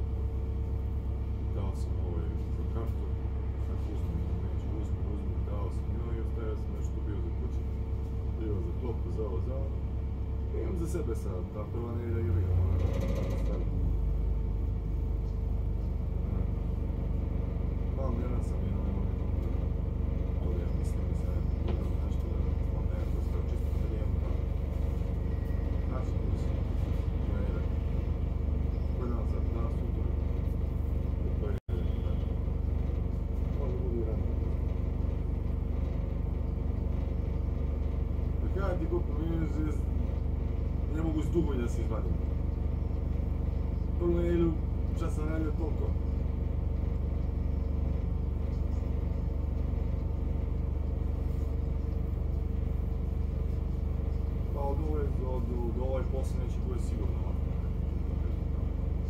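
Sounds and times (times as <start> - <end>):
bus engine idling: 0.0 - 59.0.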